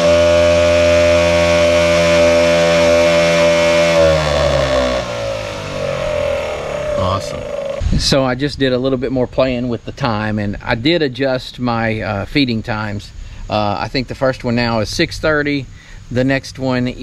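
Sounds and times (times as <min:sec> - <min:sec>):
spinner motor electric whine: 0:00.0 - 0:07.9.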